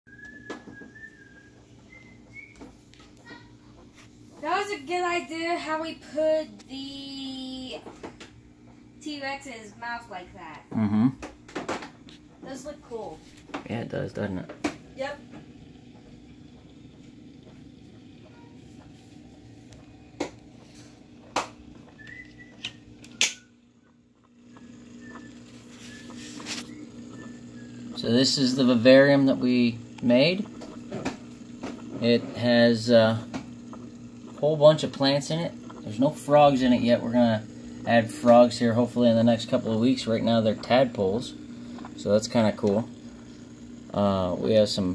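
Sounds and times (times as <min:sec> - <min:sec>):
soft whistling: 0:00.1 - 0:02.8, 0:21.7 - 0:23.9, 0:24.5 - 0:29.6
low steady hum: 0:00.1 - 0:44.9
sharp clicks: 0:21.2 - 0:28.8.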